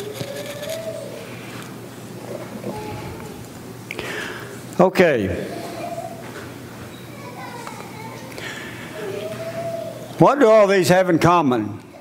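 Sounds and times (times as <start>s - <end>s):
low steady hum: 0.0s - 9.2s
faint voices: 2.2s - 3.8s, 4.5s - 10.4s.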